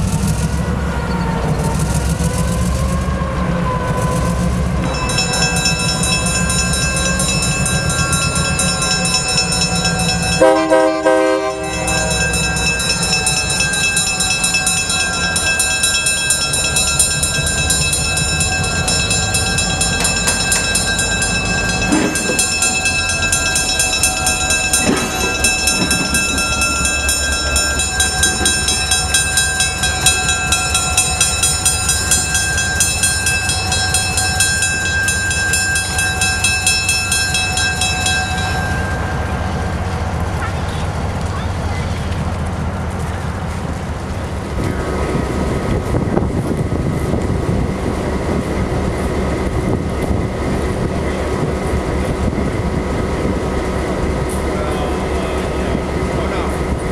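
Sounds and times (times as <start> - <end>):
diesel locomotive engine running: 0.0 - 56.9
locomotive horn blast: 10.2 - 12.4
metallic clanks: 13.6 - 36.1.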